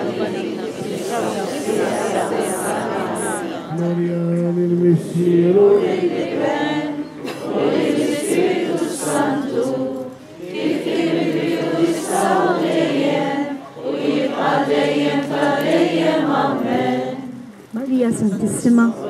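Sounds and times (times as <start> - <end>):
group singing a hymn: 0.0 - 19.0.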